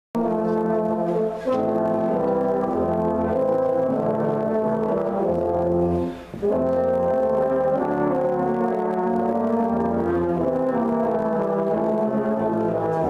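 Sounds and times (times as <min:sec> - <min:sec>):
brass quartet playing chords: 0:00.2 - 0:13.0.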